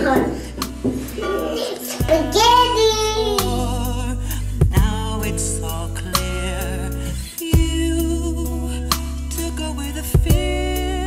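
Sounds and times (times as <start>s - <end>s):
soft music: 0.0s - 11.0s
child singing: 1.2s - 4.1s.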